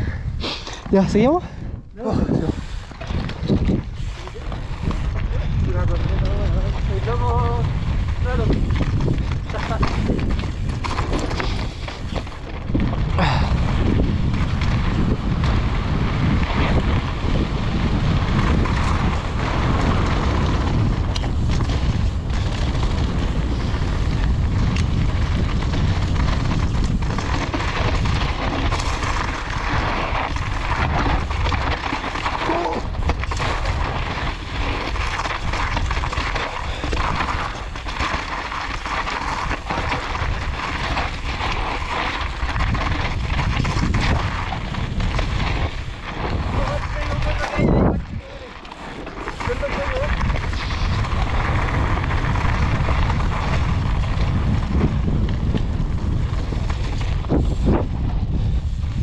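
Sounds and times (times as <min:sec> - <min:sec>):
wind rumble on microphone: 0:00.0 - 0:59.0
bike rattling over stones: 0:02.3 - 0:59.0
tyres crunching on gravel: 0:02.6 - 0:58.1.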